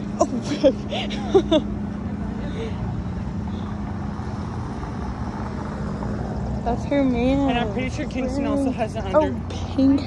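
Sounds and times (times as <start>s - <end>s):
person laughing: 0.1s - 1.8s.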